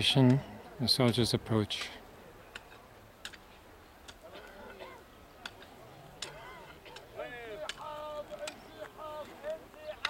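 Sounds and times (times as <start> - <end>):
voices talking: 4.0 - 10.0.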